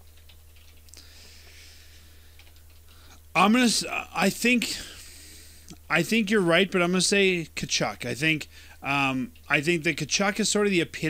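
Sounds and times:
low steady hum: 0.0 - 11.0
faint clicks: 2.3 - 3.2.

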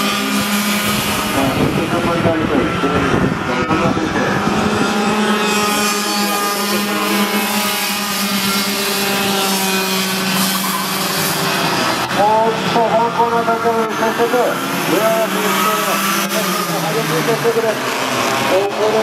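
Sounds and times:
racing kart engines running: 0.0 - 19.0.

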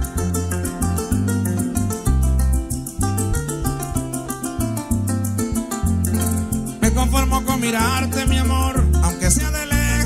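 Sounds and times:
cuatro strumming rattle: 0.0 - 10.0
harp playing: 0.0 - 10.0.

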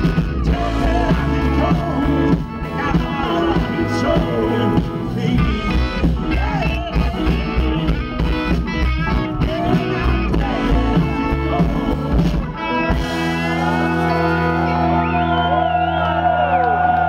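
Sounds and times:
bending guitar notes: 0.0 - 16.1
drums: 0.0 - 17.0
rock band playing loud: 0.0 - 17.0.

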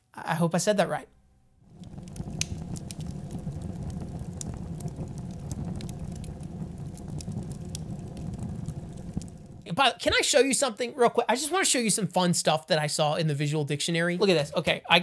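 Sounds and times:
low rumbling noise: 1.6 - 9.7
light crackles and clicks: 1.6 - 10.2.

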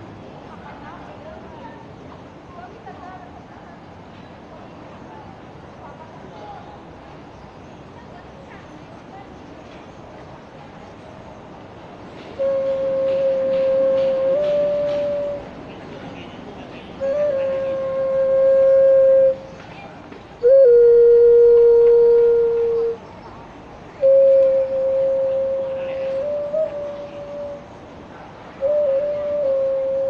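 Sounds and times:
clay vessel flute long notes: 12.4 - 15.5, 17.0 - 19.5, 20.4 - 23.1, 24.0 - 27.8, 28.6 - 30.0.

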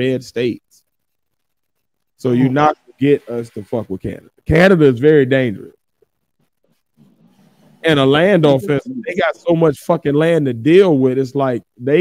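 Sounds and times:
man talking: 0.0 - 0.7, 2.2 - 5.8, 7.8 - 12.0
faint low hum: 0.0 - 12.0.

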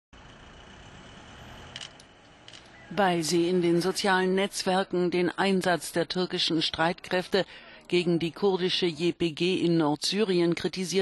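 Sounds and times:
street traffic: 0.2 - 9.0.

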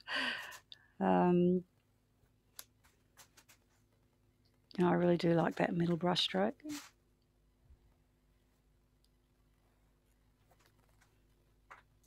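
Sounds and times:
woman talking: 1.0 - 1.7, 4.7 - 6.8.

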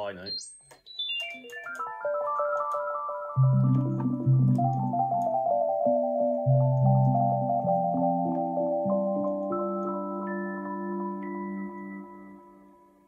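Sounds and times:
synthesizer notes and chords: 0.0 - 13.0.

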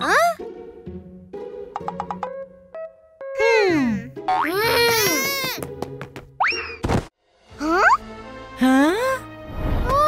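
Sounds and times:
light children's music: 0.0 - 6.5.

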